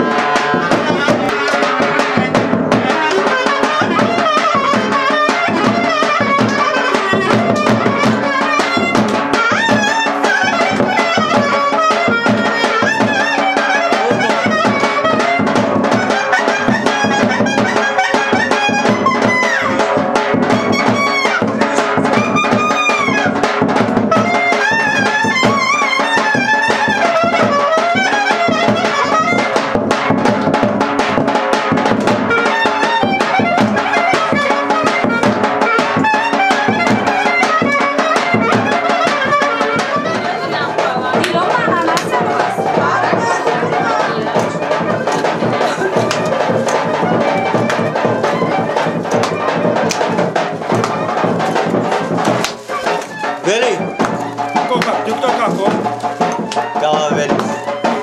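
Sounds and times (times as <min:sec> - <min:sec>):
clarinet fast ornamented melody: 0:00.0 - 0:58.0
driving drum percussion: 0:00.0 - 0:58.0.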